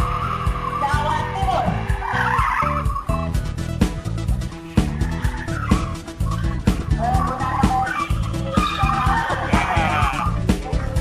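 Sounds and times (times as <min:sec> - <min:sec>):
car tyres squealing: 0:00.0 - 0:03.3, 0:04.6 - 0:10.3
background music with steady beat: 0:00.0 - 0:11.0.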